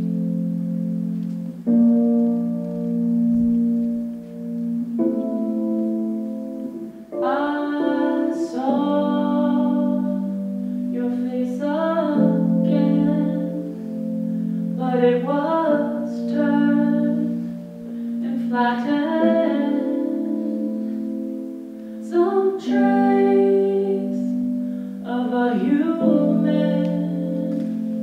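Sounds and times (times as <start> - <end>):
keyboard and electric guitar chords: 0.0 - 11.0
woman singing: 6.6 - 14.1, 14.7 - 28.0.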